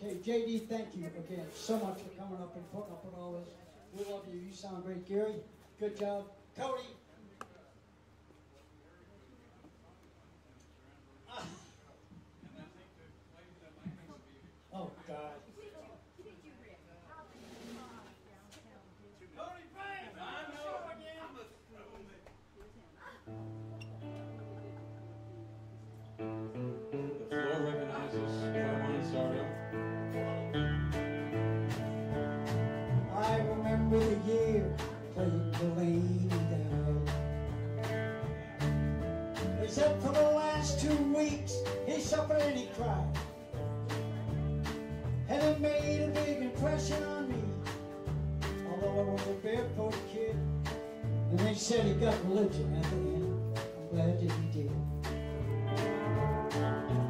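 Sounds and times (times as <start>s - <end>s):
brief hiss: 17.3s - 18.2s
bending guitar notes: 23.3s - 49.1s, 54.7s - 57.0s
country band playing: 23.3s - 57.0s.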